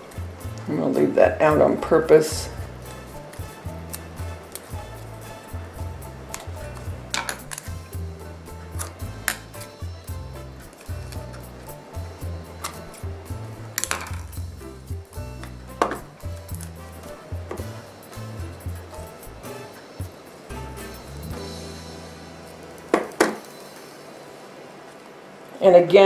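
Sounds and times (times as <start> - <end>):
music with bouncing bass line: 0.0 - 23.6
sharp knocks: 22.9 - 23.5.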